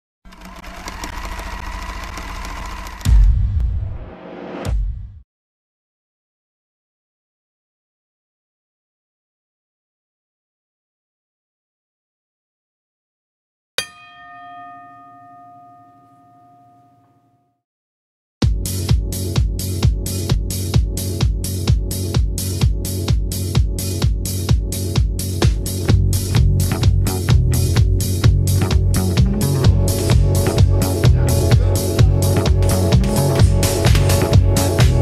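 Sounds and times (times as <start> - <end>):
rapid mechanical clatter: 0.3 - 3.3
boxing ring bell ringing: 13.8 - 17.5.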